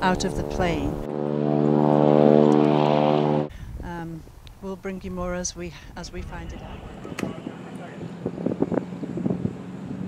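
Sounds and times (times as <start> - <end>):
light aircraft engine droning: 0.0 - 3.8, 5.8 - 10.0.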